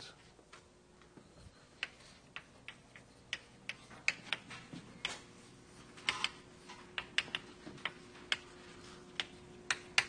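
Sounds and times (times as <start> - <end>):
faint sharp clicks and taps: 6.0 - 10.0.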